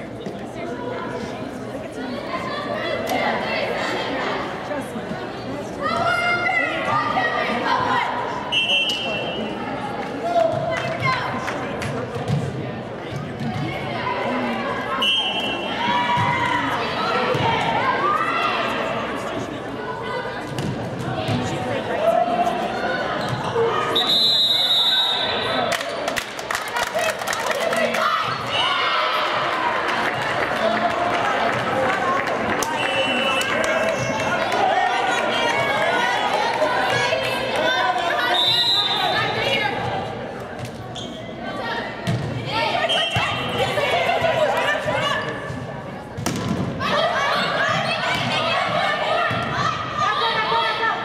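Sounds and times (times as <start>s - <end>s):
people talking in a gymnasium: 0.0s - 51.0s
referee's whistle blast: 23.9s - 25.5s
players and spectators shouting: 27.0s - 39.9s, 41.5s - 45.5s, 46.8s - 51.0s.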